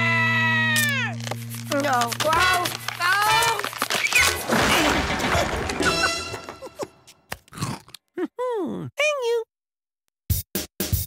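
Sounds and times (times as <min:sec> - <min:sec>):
cartoon cookie crunch: 0:07.3 - 0:08.4.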